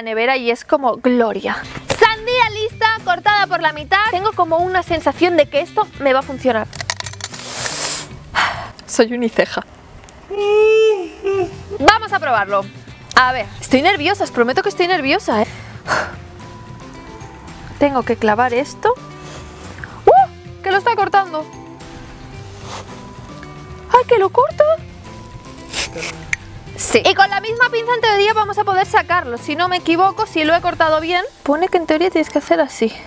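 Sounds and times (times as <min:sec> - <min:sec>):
woman speaking: 0:00.0 - 0:06.7, 0:08.9 - 0:09.7, 0:10.3 - 0:15.5, 0:17.8 - 0:19.0, 0:20.6 - 0:21.6, 0:23.9 - 0:24.9, 0:26.8 - 0:33.0
quiet background music: 0:00.0 - 0:33.0
metal tongs clicking: 0:06.7 - 0:07.4
breathy hiss: 0:07.2 - 0:08.8, 0:15.3 - 0:16.4, 0:19.0 - 0:20.0, 0:21.8 - 0:23.6, 0:25.1 - 0:26.5.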